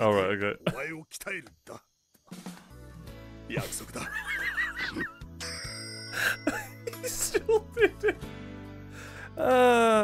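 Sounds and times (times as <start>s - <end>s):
background music: 2.3s - 10.0s
man laughing high-pitched: 4.0s - 5.2s, 6.2s - 8.2s.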